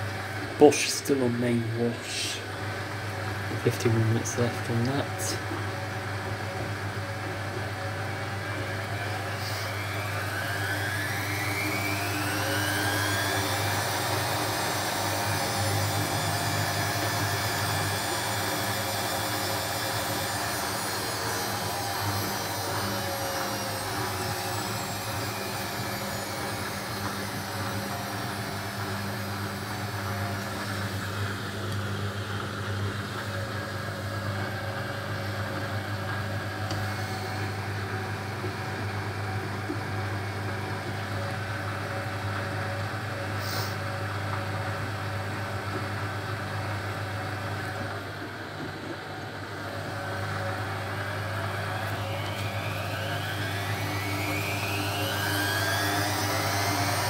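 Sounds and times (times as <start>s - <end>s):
washing machine motor whine: 0.0s - 57.0s.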